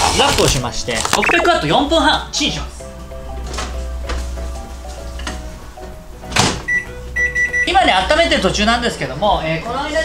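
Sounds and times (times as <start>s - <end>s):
microwave keypad beep: 1.2s - 1.6s, 6.7s - 7.8s.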